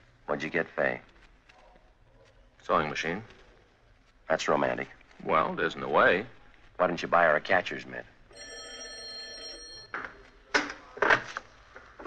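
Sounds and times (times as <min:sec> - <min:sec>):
telephone bell ringing: 0:08.3 - 0:10.2.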